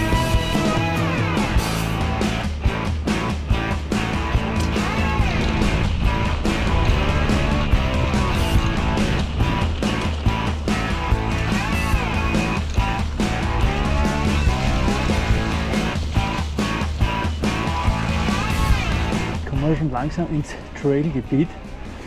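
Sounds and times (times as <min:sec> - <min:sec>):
guitar music over a beat: 0:00.0 - 0:20.0.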